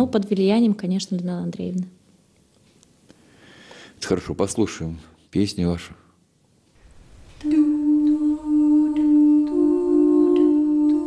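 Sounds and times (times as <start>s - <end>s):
female vocal quartet singing: 6.8s - 11.0s.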